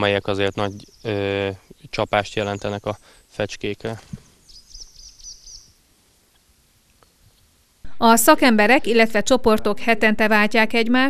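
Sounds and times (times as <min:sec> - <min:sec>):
small bird chirping: 0:00.0 - 0:07.5.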